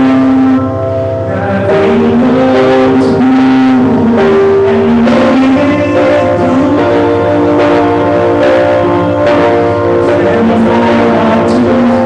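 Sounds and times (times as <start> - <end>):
man singing into a microphone: 0.0 - 12.0
piano: 0.0 - 12.0.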